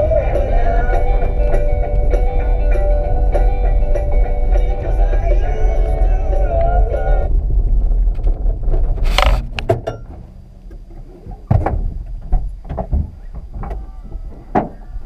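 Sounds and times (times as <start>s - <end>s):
music: 0.0s - 7.4s
low rumble: 0.0s - 12.7s
sharp knocks and thunks: 11.3s - 14.8s.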